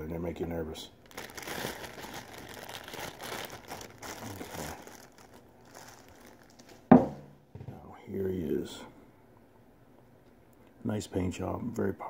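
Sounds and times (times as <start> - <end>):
plastic bag crinkling: 1.0 - 7.0
sharp knock: 6.9 - 7.8.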